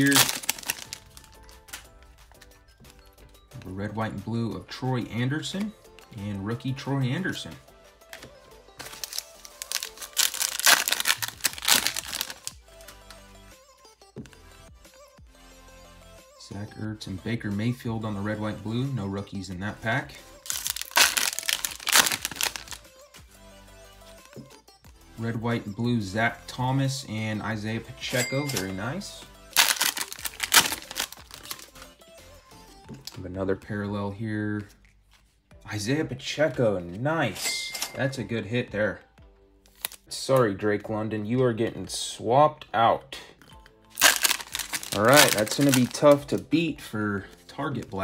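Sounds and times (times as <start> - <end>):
foil pack crinkling: 0.0 - 1.9, 8.2 - 13.0, 20.4 - 22.8, 29.5 - 31.9, 39.7 - 40.0, 43.9 - 46.4
soft background music: 0.0 - 48.0.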